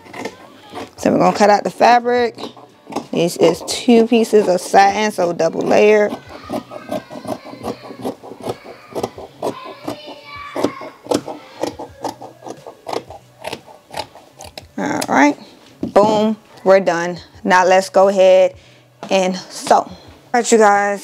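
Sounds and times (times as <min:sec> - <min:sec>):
scissors snipping fabric: 0:02.3 - 0:14.7.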